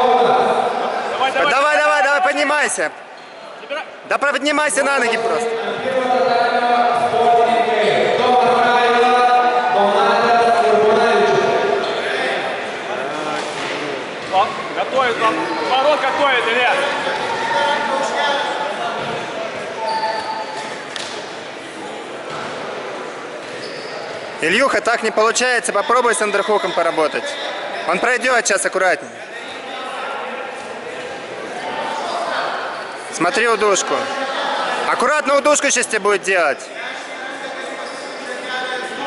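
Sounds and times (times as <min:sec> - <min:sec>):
people talking and calling: 0:00.0 - 0:39.0
murmur of distant voices: 0:04.8 - 0:39.0.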